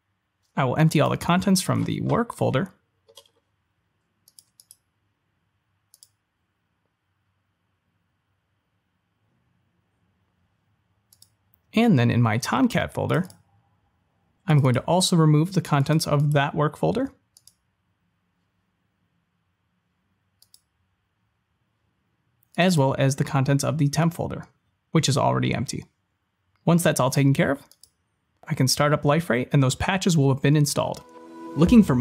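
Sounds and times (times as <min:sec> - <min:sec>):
computer mouse clicks: 0:03.1 - 0:03.5, 0:04.2 - 0:04.9, 0:05.9 - 0:06.2, 0:11.1 - 0:11.6, 0:17.3 - 0:17.6, 0:20.4 - 0:20.7, 0:27.6 - 0:28.0.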